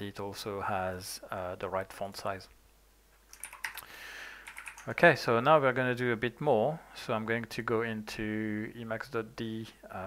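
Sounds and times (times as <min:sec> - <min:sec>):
typing on keyboard: 0:03.3 - 0:05.0.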